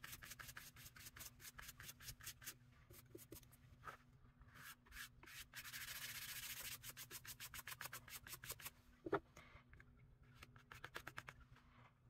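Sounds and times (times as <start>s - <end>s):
paintbrush scrubbing on paper: 0.0s - 3.4s, 4.5s - 8.7s.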